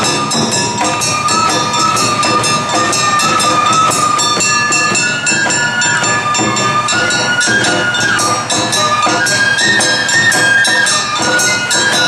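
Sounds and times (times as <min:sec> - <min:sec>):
bamboo flute high notes: 0:00.0 - 0:12.0
drums: 0:00.0 - 0:12.0
shamisen: 0:00.0 - 0:12.0.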